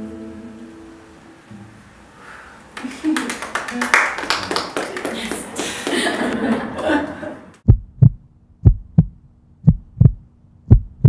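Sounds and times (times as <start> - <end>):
heartbeat thumps: 7.7 - 11.0.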